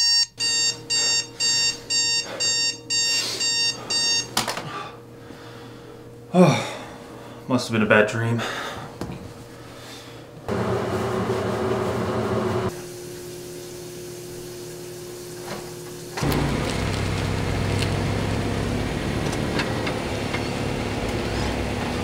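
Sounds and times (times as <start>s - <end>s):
steady hum with held tone: 0.0s - 10.5s
car engine rumble: 16.2s - 22.0s.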